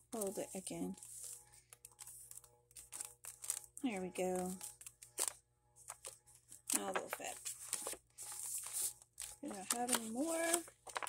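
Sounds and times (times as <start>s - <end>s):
paper rustling and sliding: 0.2s - 3.6s, 4.7s - 11.0s.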